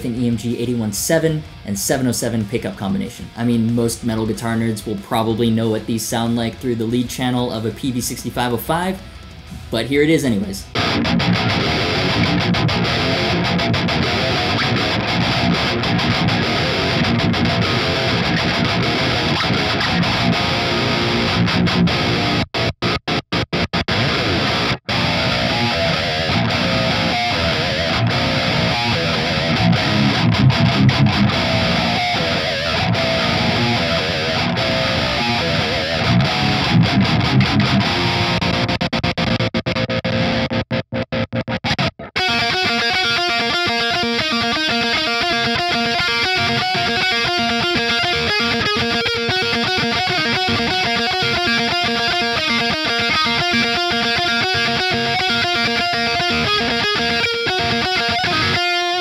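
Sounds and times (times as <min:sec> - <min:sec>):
distorted electric guitar riffing: 0:00.0 - 0:59.0.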